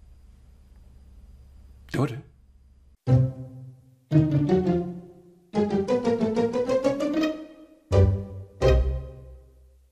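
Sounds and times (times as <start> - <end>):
faint low hum: 0.0 - 5.6
man speaking: 1.9 - 2.3.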